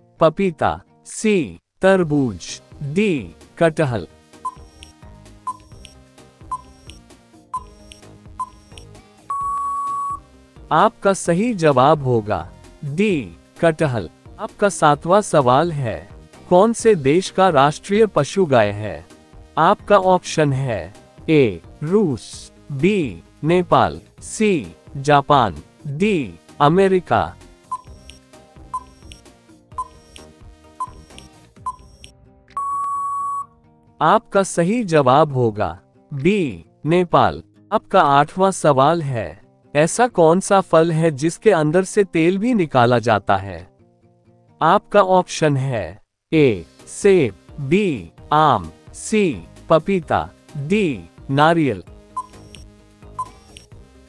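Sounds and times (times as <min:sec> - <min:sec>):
soft background music: 0:00.0 - 0:54.0
short beeps: 0:04.4 - 0:04.9, 0:05.5 - 0:07.0, 0:07.6 - 0:10.2, 0:27.7 - 0:29.2, 0:29.8 - 0:30.2, 0:30.8 - 0:33.5, 0:52.2 - 0:52.6, 0:53.2 - 0:53.6
countdown timer ticking: 0:04.4 - 0:10.3, 0:27.2 - 0:33.4, 0:50.2 - 0:53.8
long loud beep: 0:09.3 - 0:10.2, 0:32.6 - 0:33.5.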